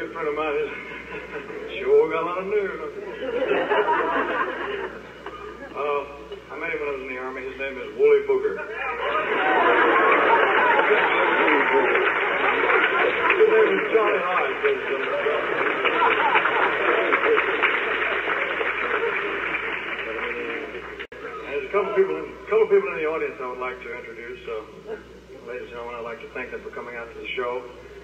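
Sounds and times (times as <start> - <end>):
voices: 0.0 - 27.7
audience applauding and cheering: 9.0 - 21.1.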